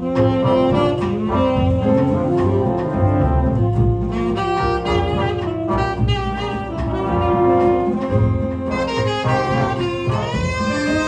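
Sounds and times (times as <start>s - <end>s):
jazz big band accompaniment: 0.0s - 11.0s
tenor saxophone melody: 0.0s - 11.0s.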